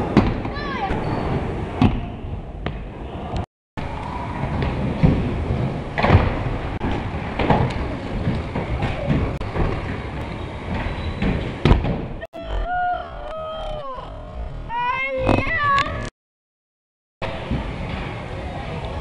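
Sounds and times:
child shouting: 0.5s - 1.0s, 12.4s - 16.0s.

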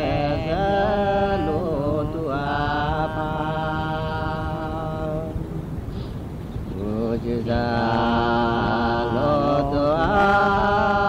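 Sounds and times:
person chanting slowly: 0.0s - 5.8s, 6.7s - 11.0s.

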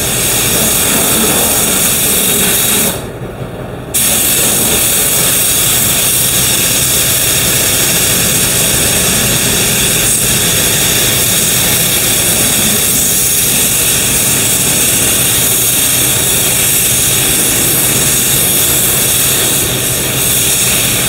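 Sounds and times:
paint spray gun hissing: 4.0s - 21.0s.

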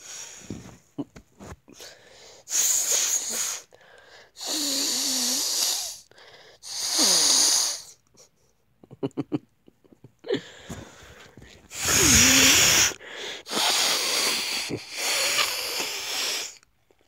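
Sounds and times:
gasps: 10.3s - 16.6s.

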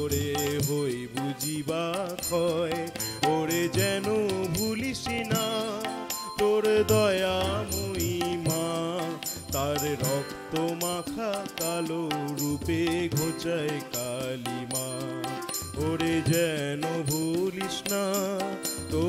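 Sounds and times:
harmonium: 0.0s - 19.0s
man singing devotional song: 0.0s - 19.0s
percussion beat: 0.0s - 19.0s.

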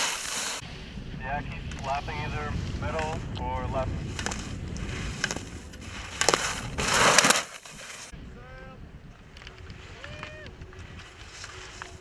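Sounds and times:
ski edges scraping snow: 0.0s - 0.6s, 4.0s - 8.1s, 10.8s - 12.0s
wind rumble on microphone: 0.6s - 7.0s, 8.1s - 12.0s.

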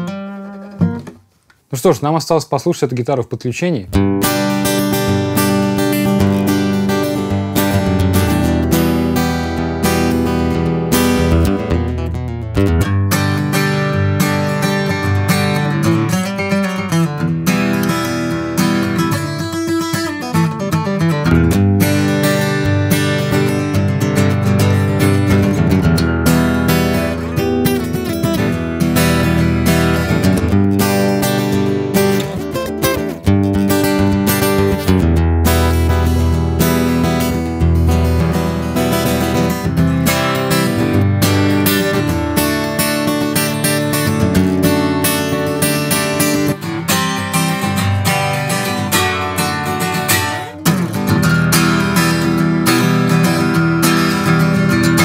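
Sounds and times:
acoustic guitar playing: 0.0s - 1.9s, 3.9s - 55.0s.

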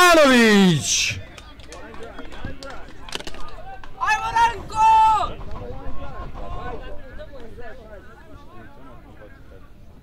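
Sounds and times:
spectators chattering: 0.0s - 3.5s.

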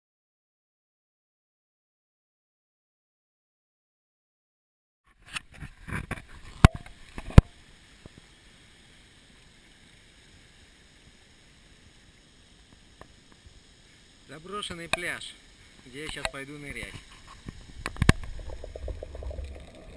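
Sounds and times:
calm sea on pebbly shore: 5.1s - 19.9s.

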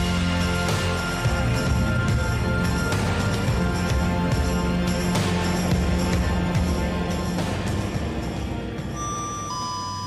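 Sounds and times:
background music: 0.0s - 10.0s
steady low hum: 0.0s - 10.0s
two-note descending chime: 8.9s - 10.0s.

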